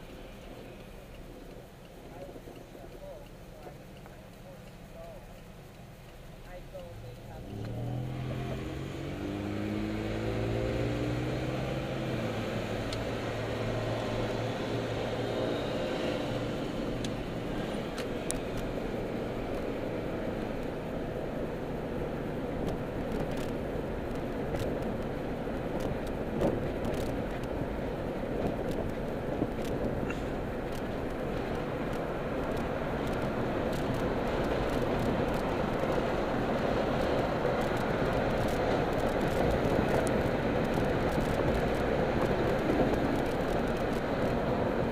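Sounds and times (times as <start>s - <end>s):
road noise: 0.0s - 44.9s
car engine accelerating: 6.7s - 44.9s.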